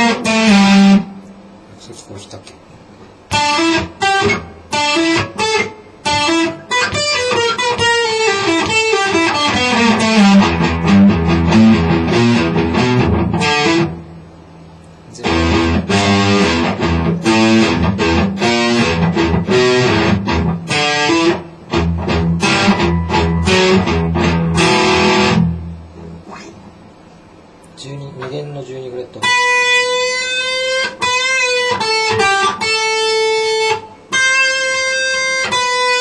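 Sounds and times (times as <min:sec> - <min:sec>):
electric guitar picking quick runs: 0:03.3 - 0:14.0, 0:15.2 - 0:26.4.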